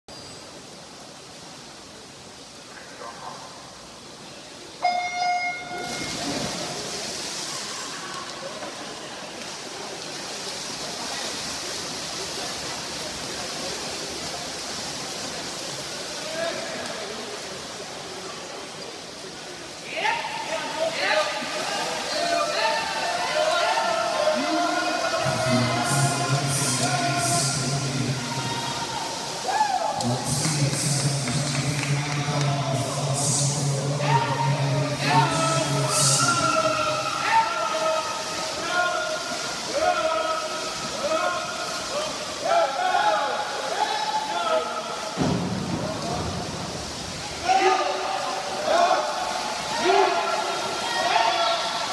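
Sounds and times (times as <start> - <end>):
water splashing: 0.5 - 51.9
crowd noise: 2.6 - 51.9
electronic start horn beep: 4.8 - 6.1
faint shouts: 28.2 - 30.0.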